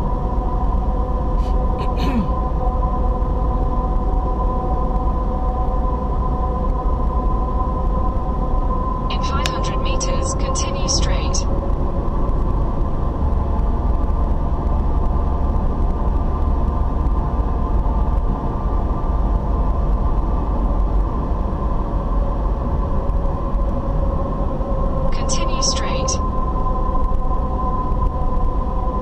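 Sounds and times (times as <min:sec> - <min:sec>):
steady hum: 0:00.0 - 0:15.7, 0:25.0 - 0:29.0
car cabin road rumble: 0:01.3 - 0:02.5.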